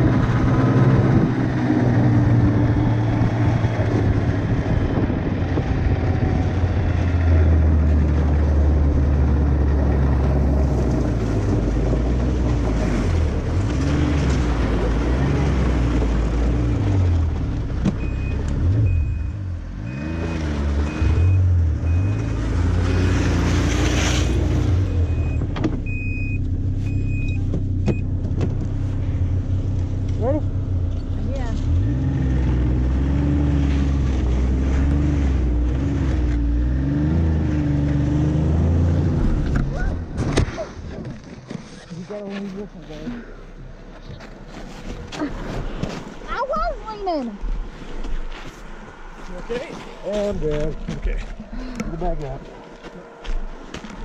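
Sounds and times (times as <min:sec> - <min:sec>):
snowmobile engine running: 0:00.0 - 0:18.3.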